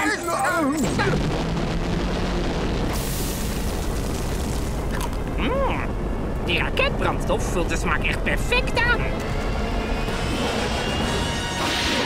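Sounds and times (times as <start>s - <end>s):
rocket engine exhaust blast: 1.2s - 6.4s
music: 8.9s - 12.0s.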